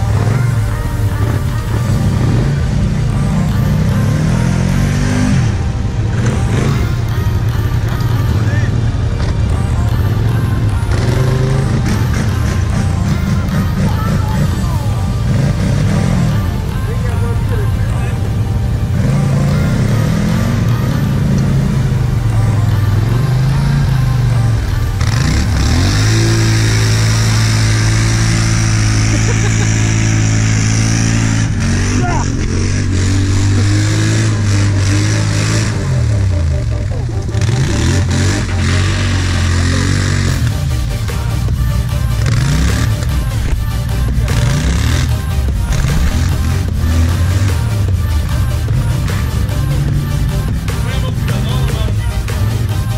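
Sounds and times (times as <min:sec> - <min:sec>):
quad engine revving in mud: 0:00.0 - 0:52.9.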